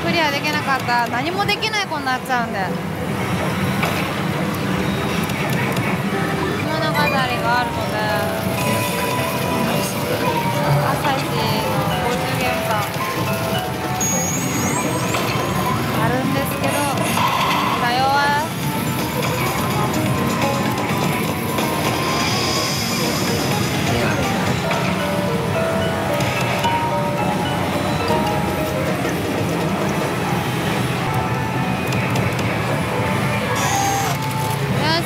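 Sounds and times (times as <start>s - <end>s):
pachinko parlour din: 0.0s - 35.0s
gaming machine music and effects: 2.8s - 35.0s.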